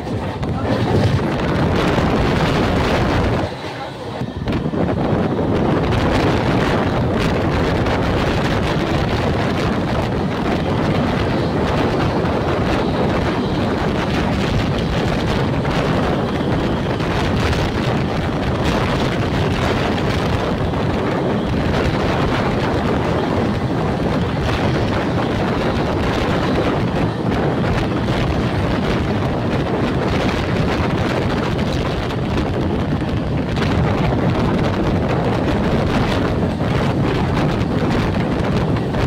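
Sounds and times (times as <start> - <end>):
train running on rails: 0.0 - 39.0
wind buffeting microphone: 0.0 - 39.0.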